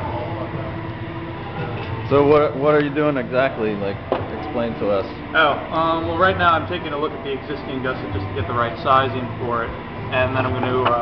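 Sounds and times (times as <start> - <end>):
faint hum: 0.0 - 11.0
low mechanical rumble: 0.0 - 11.0.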